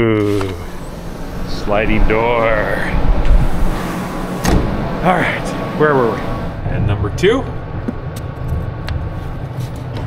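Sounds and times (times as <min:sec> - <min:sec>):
sliding glass door rumbling: 0:00.2 - 0:06.6.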